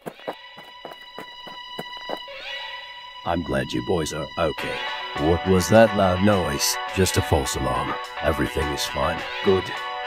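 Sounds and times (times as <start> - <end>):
light footsteps running: 0.0 - 2.3.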